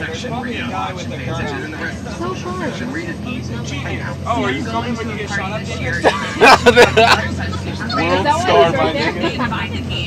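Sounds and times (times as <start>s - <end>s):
bus engine drone: 0.0s - 10.0s
people talking: 0.0s - 10.0s
road noise: 0.0s - 10.0s.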